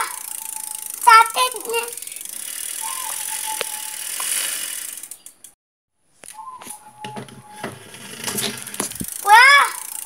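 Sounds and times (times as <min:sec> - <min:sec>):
bicycle chain rattling: 0:00.0 - 0:05.6, 0:07.8 - 0:10.0.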